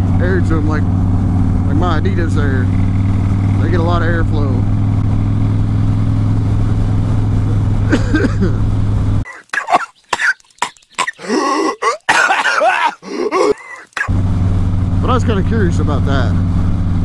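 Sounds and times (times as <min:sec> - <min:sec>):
motorcycle engine cruising: 0:00.0 - 0:09.3, 0:13.4 - 0:17.0
cartoon voice coughing and groaning: 0:07.9 - 0:08.6, 0:09.3 - 0:14.1.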